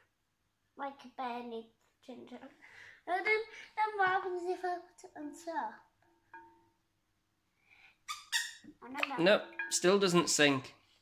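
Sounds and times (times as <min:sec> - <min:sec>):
wooden track tapping glass bowl: 0:09.0 - 0:10.6.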